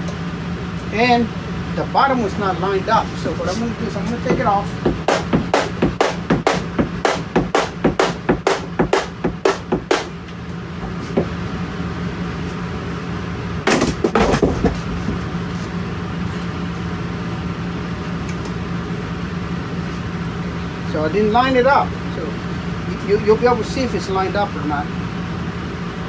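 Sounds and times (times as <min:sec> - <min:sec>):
steady low hum: 0:00.0 - 0:26.0
knocking on cabinet panel: 0:04.2 - 0:10.1, 0:13.7 - 0:14.8.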